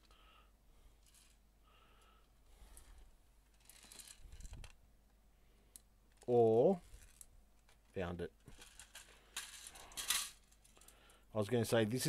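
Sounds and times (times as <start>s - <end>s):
plastic pieces clattering: 3.5s - 4.7s, 8.5s - 10.9s
plastic pieces clicking and rattling: 3.5s - 4.8s, 6.9s - 11.0s.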